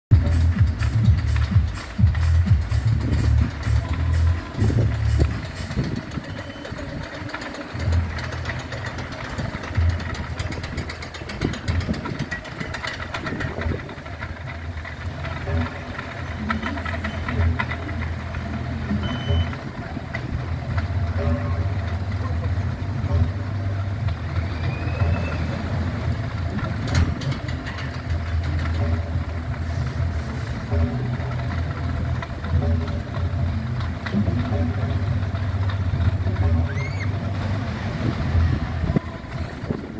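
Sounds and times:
coaster car running on track: 0.1 - 39.9
loud music with heavy bass: 0.1 - 39.9
voices: 0.3 - 39.9.

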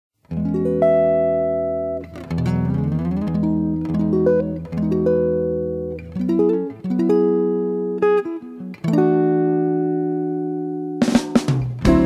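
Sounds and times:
guitar playing ringing chords: 0.3 - 12.0.

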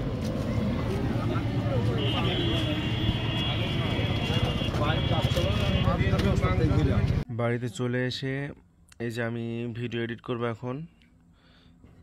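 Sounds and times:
street noise: 0.0 - 12.0.

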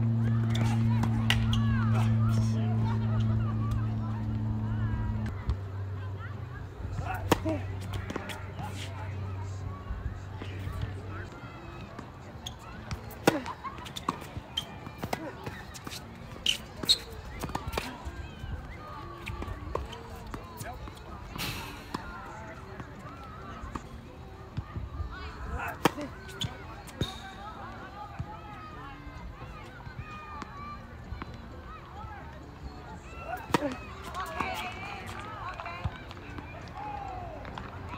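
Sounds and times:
racket striking tennis ball: 0.4 - 2.4, 7.0 - 8.9, 12.9 - 17.9, 25.7 - 26.1, 33.4 - 34.6.

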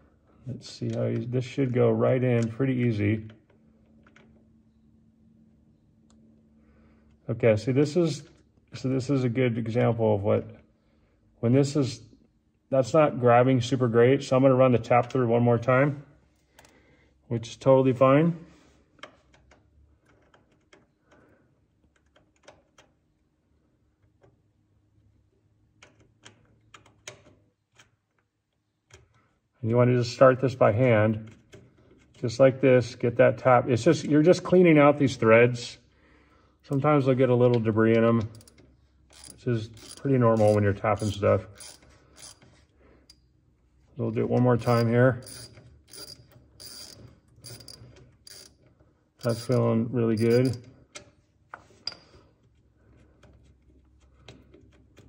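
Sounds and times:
thread tap clicking and scraping: 49.2 - 52.1.

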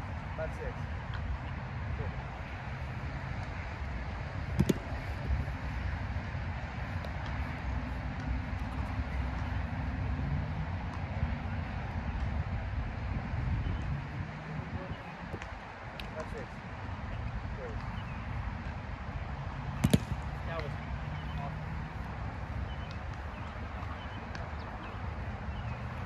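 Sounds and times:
sharp smack: 19.8 - 20.2.

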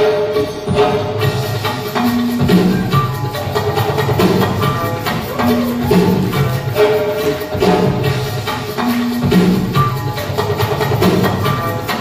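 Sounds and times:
music with steady beat: 0.0 - 12.0.

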